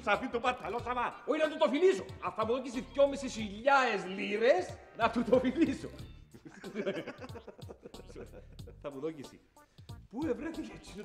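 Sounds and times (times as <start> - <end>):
music with steady beat: 0.0 - 3.7, 4.5 - 11.0
man laughing: 6.3 - 8.9.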